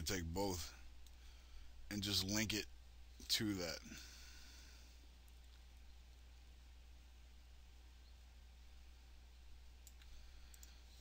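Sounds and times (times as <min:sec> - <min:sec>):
low electrical hum: 0:00.0 - 0:11.0
faint computer mouse clicks: 0:09.8 - 0:10.8.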